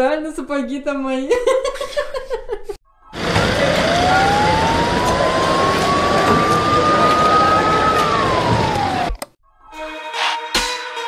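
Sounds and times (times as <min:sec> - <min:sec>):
loud street noise: 0:03.1 - 0:09.1
siren winding up: 0:03.2 - 0:09.2.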